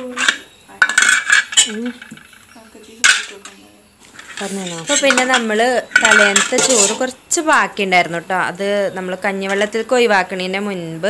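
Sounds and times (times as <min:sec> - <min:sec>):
spoon scraping metal pot: 0:04.1 - 0:07.2.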